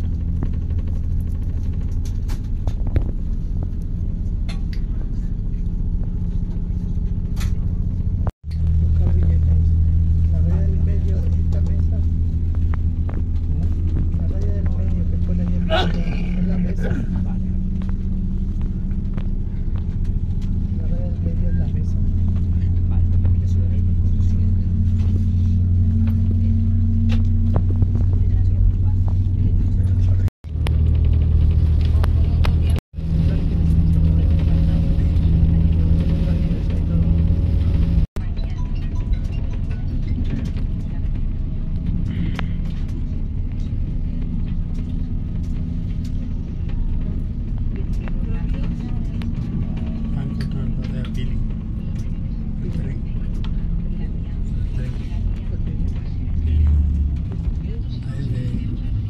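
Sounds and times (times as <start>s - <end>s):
train rumbling: 0.0s - 59.0s.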